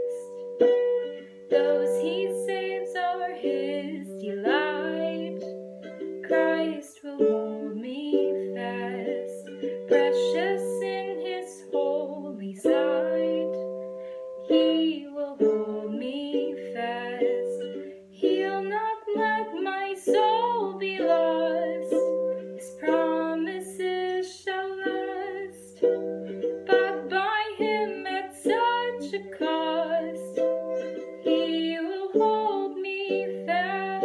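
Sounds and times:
strummed acoustic string instrument: 0.0s - 34.0s
woman singing a hymn: 1.6s - 5.5s, 6.2s - 13.6s, 14.5s - 17.6s, 18.2s - 25.8s, 26.6s - 30.4s, 31.3s - 34.0s.

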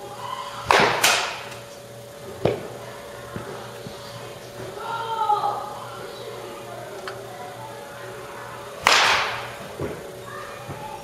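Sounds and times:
baseball bat cracking ball: 0.7s - 1.6s, 8.8s - 10.0s.

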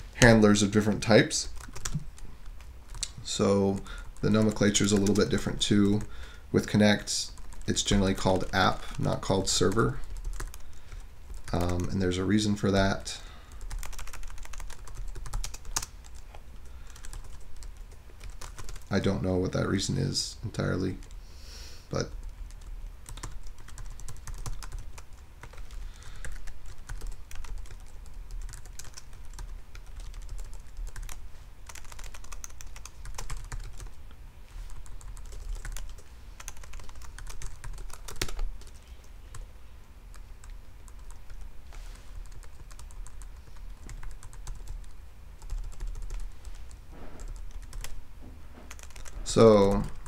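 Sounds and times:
low steady hum: 0.0s - 50.0s.

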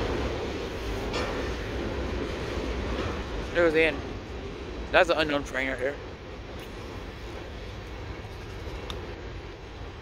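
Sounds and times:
train cars rolling over trestle: 0.0s - 9.2s.

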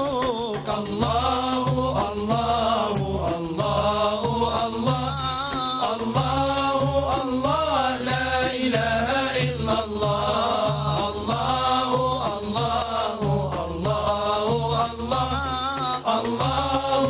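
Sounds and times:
frame drums: 0.0s - 17.0s
jingling hand drum: 0.0s - 17.0s
men chanting a religious song: 0.0s - 17.0s.

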